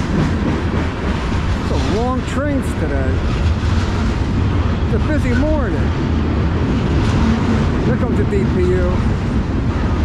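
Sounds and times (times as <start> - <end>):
train wheels rumbling on rails: 0.0 - 10.0.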